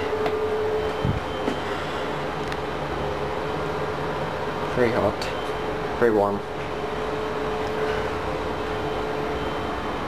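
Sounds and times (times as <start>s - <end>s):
machine room hum: 0.0s - 10.0s.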